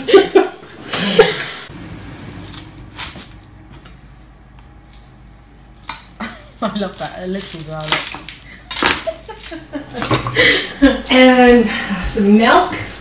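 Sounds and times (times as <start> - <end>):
low hum with faint hiss: 0.0 - 13.0.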